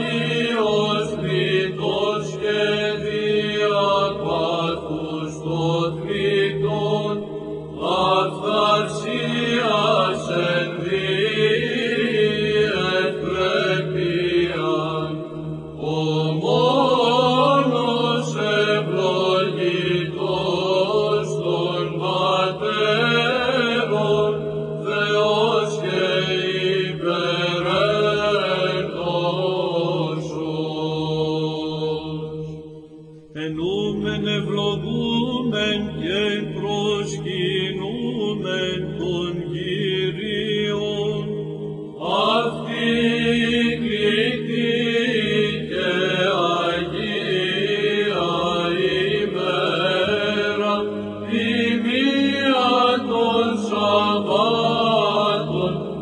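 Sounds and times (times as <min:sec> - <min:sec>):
held vocal drone: 0:00.0 - 0:56.0
voices chanting ornamented line: 0:00.0 - 0:56.0.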